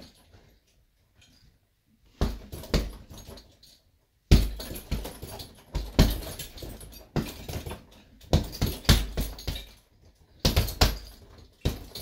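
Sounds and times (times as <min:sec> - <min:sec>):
punches on heavy bag: 0:02.2 - 0:03.2, 0:04.3 - 0:09.7, 0:10.4 - 0:12.0
chain jingling: 0:04.6 - 0:12.0.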